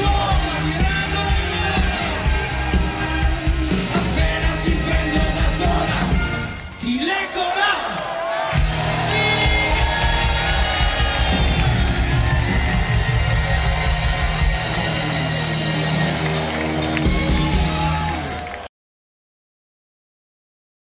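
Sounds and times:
rock band playing: 0.0s - 7.1s, 8.5s - 18.7s.

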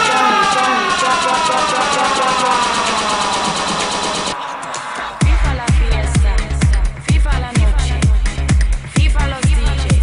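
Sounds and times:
siren-like synth tone gliding down: 0.0s - 7.0s
fast ticking electronic pulse: 0.1s - 7.2s.

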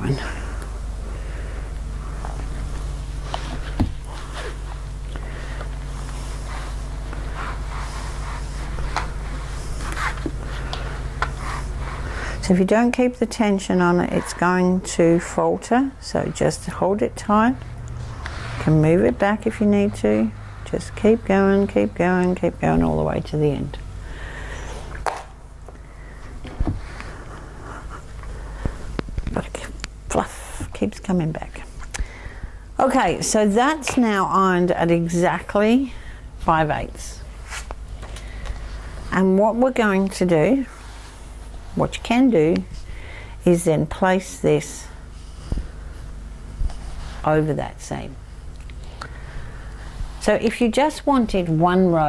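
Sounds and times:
steady low hum: 0.0s - 52.0s
iron scraping on fabric: 6.0s - 10.2s.

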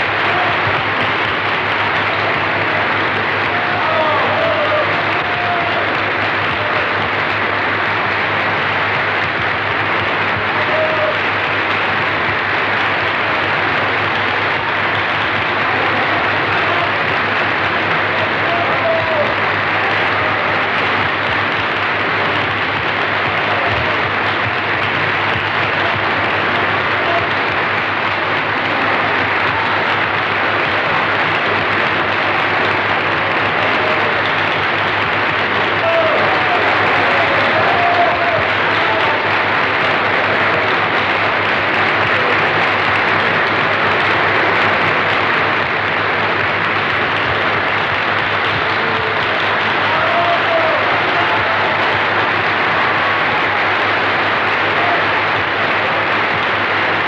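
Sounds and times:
audience applauding: 0.0s - 57.0s.

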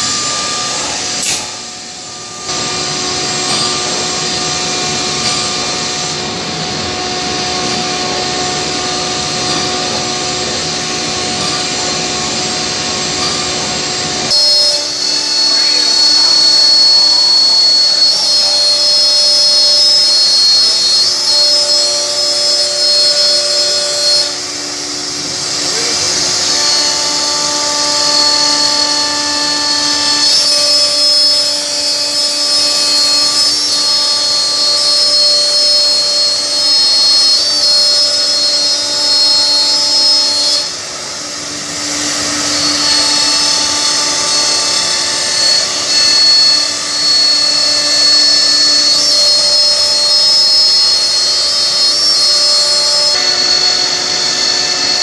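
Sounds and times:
router spindles whining: 0.0s - 55.0s
wood cutting noise: 0.0s - 55.0s.

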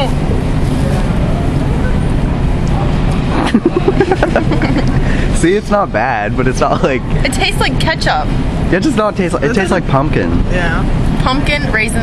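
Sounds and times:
loud low rumble: 0.0s - 12.0s
voices and laughter: 3.2s - 5.6s, 6.4s - 7.8s.

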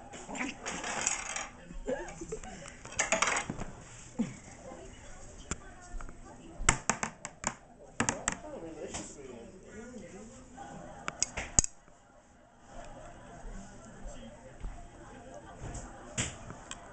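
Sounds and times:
people laughing: 1.6s - 2.9s, 10.2s - 16.9s.

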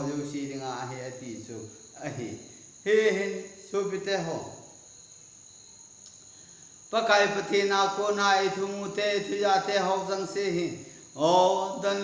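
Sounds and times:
man speaking: 0.0s - 4.6s, 6.9s - 12.0s.

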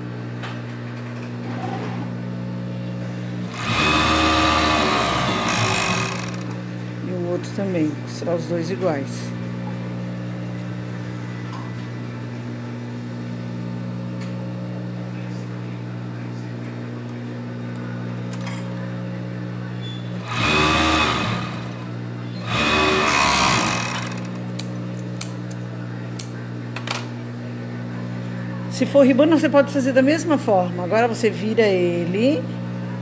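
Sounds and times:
overlock machine stitching: 3.5s - 6.6s, 20.2s - 24.5s.

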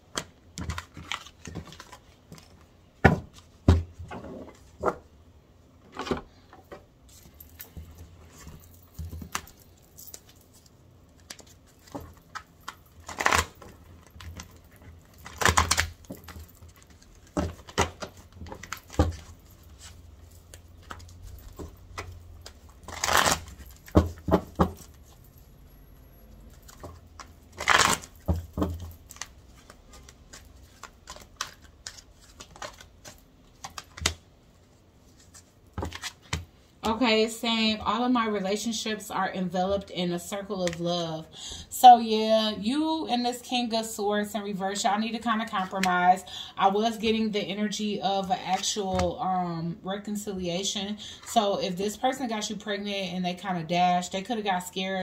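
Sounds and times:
cards being shuffled: 7.1s - 25.2s, 26.4s - 34.2s, 35.0s - 37.0s.

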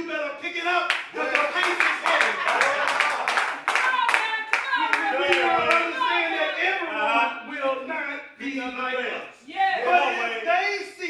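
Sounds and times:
hand claps: 0.9s - 6.0s.

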